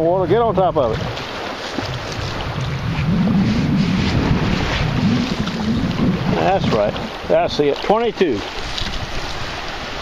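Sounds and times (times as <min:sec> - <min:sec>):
wave washing over sand: 0:00.0 - 0:10.0
wind noise on microphone: 0:00.0 - 0:10.0.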